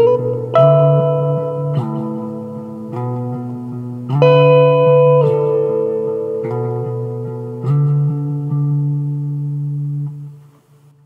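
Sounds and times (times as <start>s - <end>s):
ringing guitar chord: 0.0s - 10.5s.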